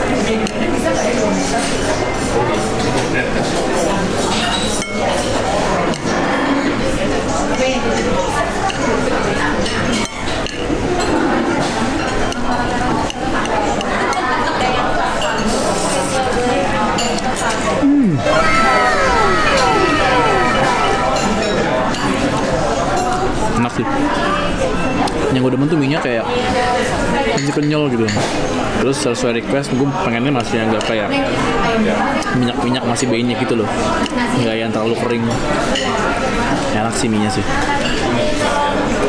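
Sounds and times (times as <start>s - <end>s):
restaurant chatter: 0.0s - 39.0s
descending whistle tones: 18.0s - 22.2s.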